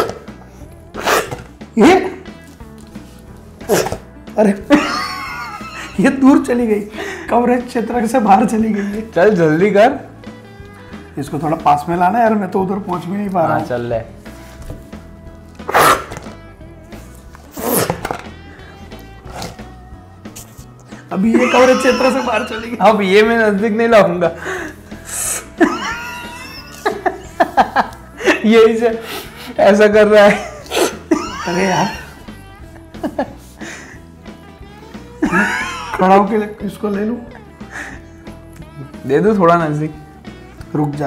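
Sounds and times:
person blowing air forcefully: 0.0 - 1.6, 15.6 - 16.3, 16.9 - 20.7, 24.4 - 25.6
background music: 0.0 - 41.0.

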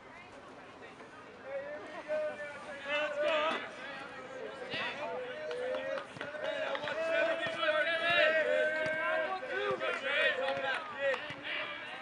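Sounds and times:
men calling out: 4.9 - 10.8.

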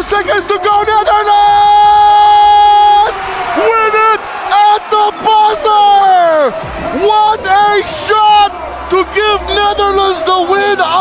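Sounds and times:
crowd noise: 0.0 - 11.0
man yelling excitedly: 0.0 - 11.0.

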